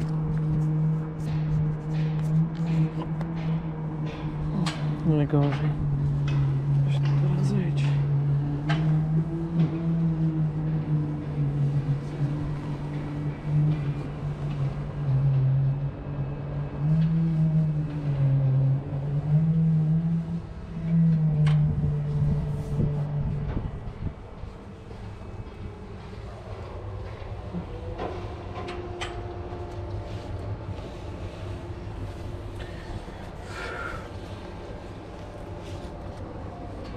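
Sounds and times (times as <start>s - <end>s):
low droning hum: 0.0s - 36.9s
wind rumble on microphone: 0.0s - 36.9s.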